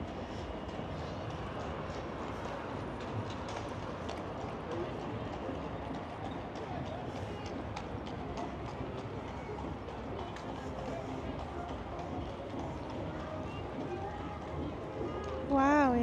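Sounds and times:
indistinct distant voices: 0:00.0 - 0:16.0.

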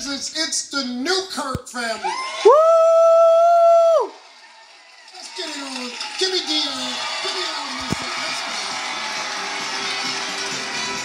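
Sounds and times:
person whooping through tv speaker: 0:02.0 - 0:04.2.

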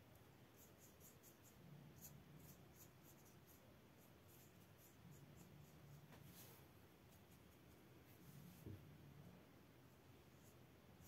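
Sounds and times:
faint low hum: 0:00.0 - 0:11.0
paintbrush scratching on paper: 0:00.5 - 0:08.6, 0:10.2 - 0:11.0.

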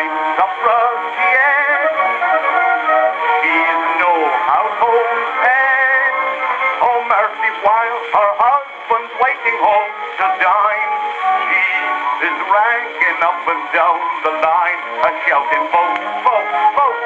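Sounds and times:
ragtime song on gramophone: 0:00.0 - 0:17.0.

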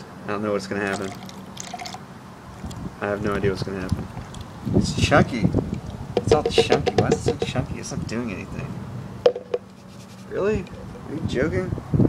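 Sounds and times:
liquid pouring with splashes: 0:00.8 - 0:02.0.

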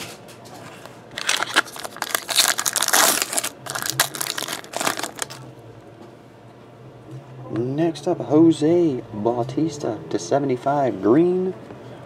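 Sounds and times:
foil wrapper crackling: 0:01.1 - 0:05.4.

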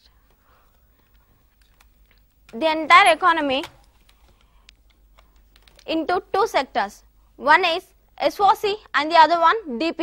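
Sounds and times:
person speaking: 0:00.0 - 0:10.0
faint scattered clicks: 0:00.2 - 0:02.6, 0:03.6 - 0:05.9.

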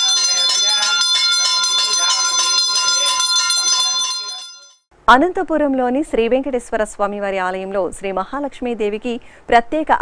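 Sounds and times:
voices: 0:00.0 - 0:04.7
temple bell ringing: 0:00.0 - 0:04.8.

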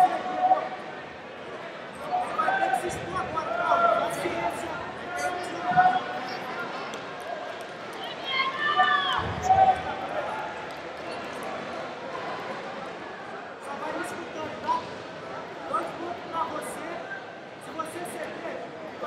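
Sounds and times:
murmur of indoor crowd: 0:00.0 - 0:19.0.

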